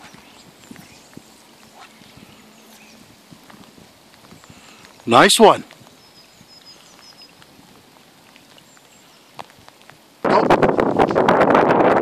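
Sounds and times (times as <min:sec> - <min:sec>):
rain falling on a lake: 0:00.0 - 0:12.0.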